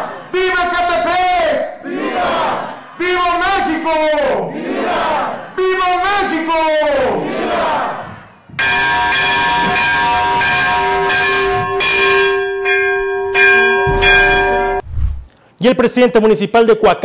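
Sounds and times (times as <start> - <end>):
bell ringing: 8.6 - 14.8.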